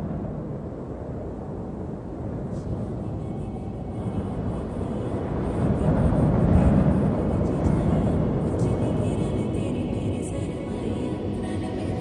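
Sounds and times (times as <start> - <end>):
low rumbling swell: 0.0 - 12.0
background music: 2.9 - 12.0.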